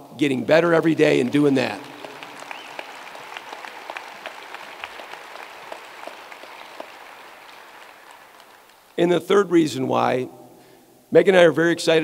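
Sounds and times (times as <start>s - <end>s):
audience applauding: 0.8s - 9.0s.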